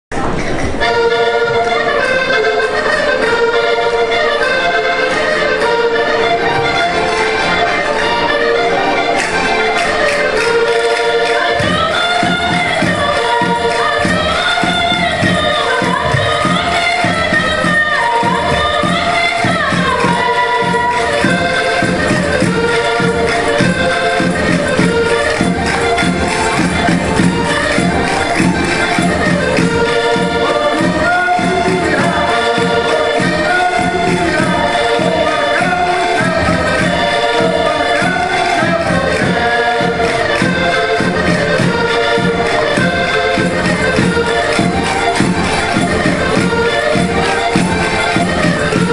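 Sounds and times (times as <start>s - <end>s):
accordion: 0.2s - 48.9s
group singing: 0.8s - 48.9s.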